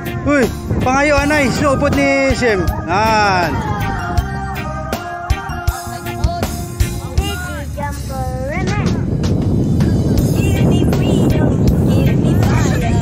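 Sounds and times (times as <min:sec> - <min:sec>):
wind buffeting microphone: 0:00.0 - 0:13.0
voices calling out: 0:00.4 - 0:08.5.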